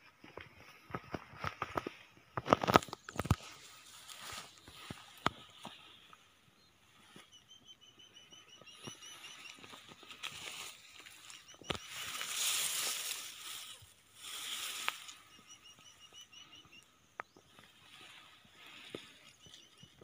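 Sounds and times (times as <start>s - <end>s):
grass and leaves rustling: 0.2s - 20.0s
small animal chirping: 7.1s - 17.4s
sharp snaps of twigs: 9.6s - 15.2s.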